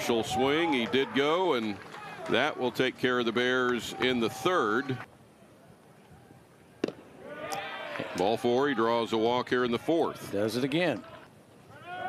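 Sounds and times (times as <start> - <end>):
voices: 0.0 - 6.5.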